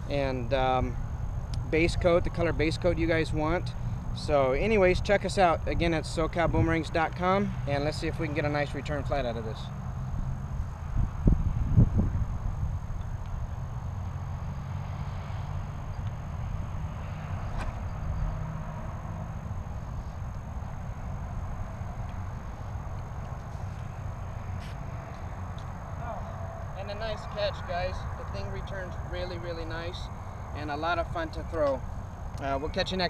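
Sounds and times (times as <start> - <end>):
wind rumble on microphone: 0.8 - 7.4, 8.9 - 14.2.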